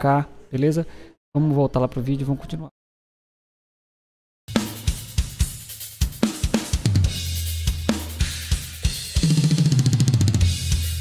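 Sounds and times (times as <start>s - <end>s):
drum kit solo: 4.5s - 11.0s
fast double bass drum strokes: 4.5s - 11.0s.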